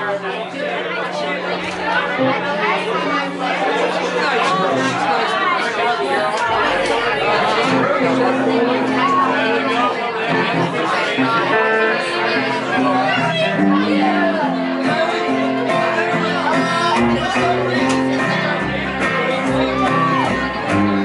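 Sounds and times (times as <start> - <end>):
babble of overlapping conversation: 0.0 - 21.0.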